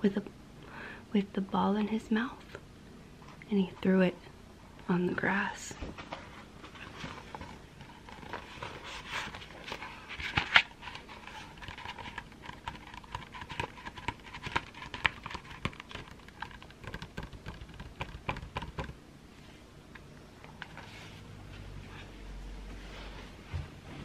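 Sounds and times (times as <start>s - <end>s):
fingertips tapping on paper: 11.6s - 19.0s.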